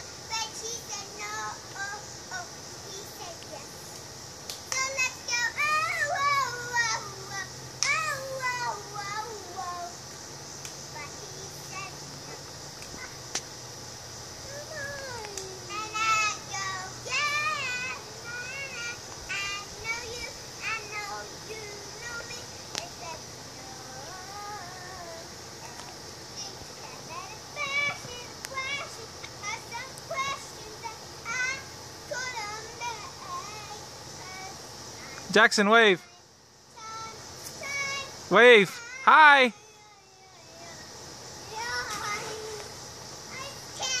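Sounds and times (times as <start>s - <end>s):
girl singing wordlessly: 0.0s - 10.2s, 10.8s - 13.2s, 14.3s - 35.3s, 36.0s - 44.0s
child calling out: 37.9s - 39.8s.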